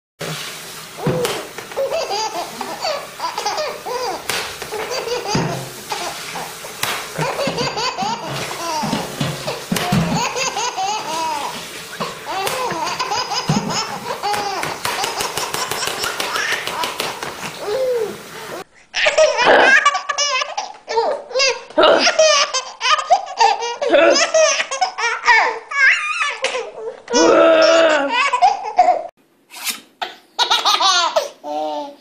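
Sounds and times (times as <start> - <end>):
babies laughing: 1.0 - 29.1, 30.4 - 32.0.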